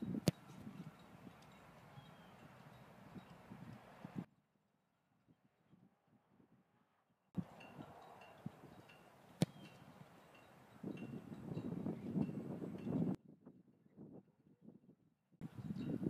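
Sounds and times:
foot kicking a football: 9.4s - 9.7s.

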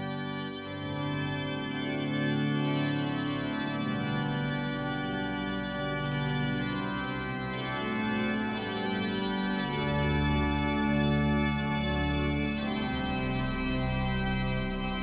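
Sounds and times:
organ playing held chords: 0.0s - 15.0s.

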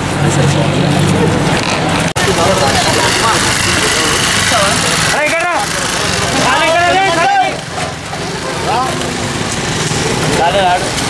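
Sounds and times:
loud outdoor background noise: 0.0s - 11.0s
people talking: 0.0s - 11.0s.

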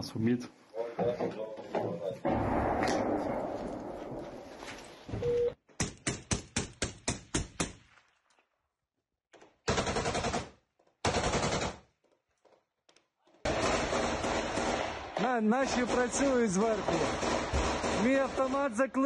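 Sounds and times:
automatic weapon fire: 9.7s - 11.8s, 13.5s - 18.7s.

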